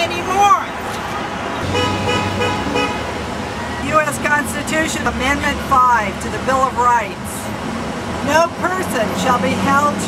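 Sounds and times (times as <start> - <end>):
street traffic: 0.0 - 10.0
car horn held tone: 1.6 - 3.0.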